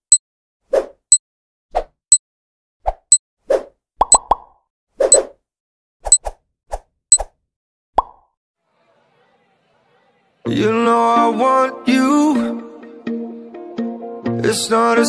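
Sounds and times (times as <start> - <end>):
short pops and clicks: 4.0 - 4.6, 8.0 - 8.4.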